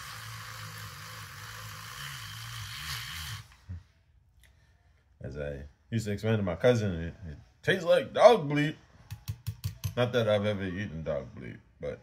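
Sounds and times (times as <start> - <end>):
milk frother whirring: 0.0 - 3.8.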